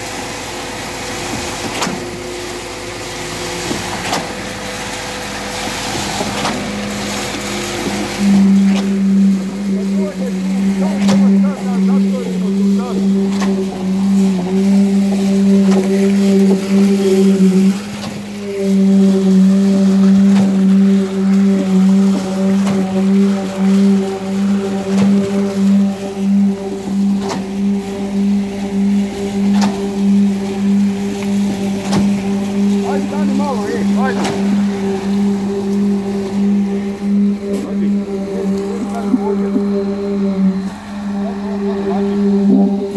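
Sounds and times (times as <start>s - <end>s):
concrete pump engine hum: 0.0s - 42.9s.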